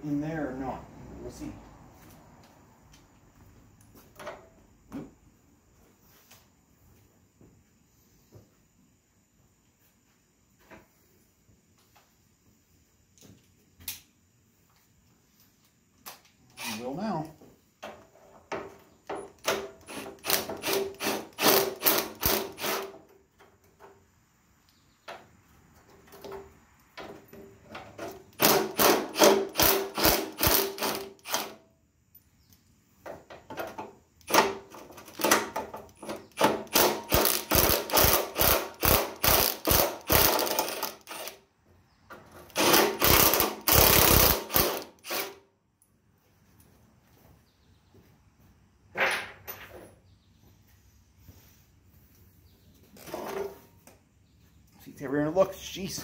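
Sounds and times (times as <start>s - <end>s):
impact wrench hammering on bolts: 19.1s - 23.0s, 28.0s - 31.6s, 33.6s - 41.3s, 42.5s - 45.3s.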